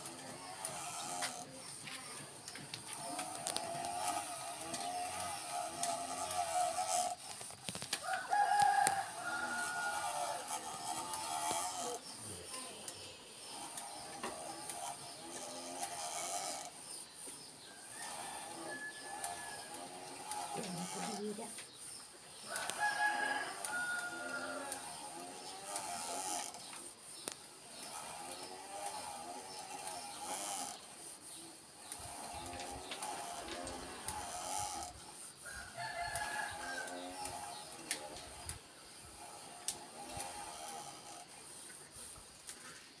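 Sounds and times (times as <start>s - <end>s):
roosters crowing: 8.0s - 12.1s, 17.7s - 21.4s, 22.4s - 26.6s, 32.1s - 38.5s.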